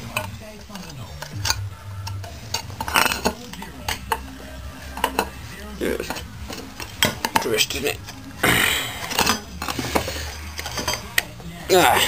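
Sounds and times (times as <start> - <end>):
metal parts clinking and scraping: 0.1 - 4.2, 9.0 - 11.4.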